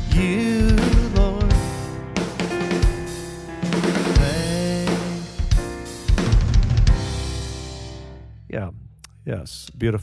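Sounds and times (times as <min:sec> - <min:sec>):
drum fill: 0:00.0 - 0:08.1.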